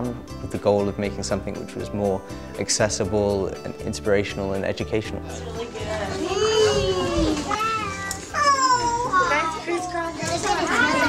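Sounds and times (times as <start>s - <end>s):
young children chattering: 5.2s - 11.0s.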